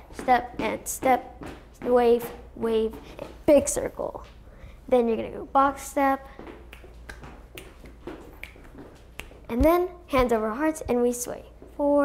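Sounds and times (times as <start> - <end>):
finger snaps: 6.7 - 9.4.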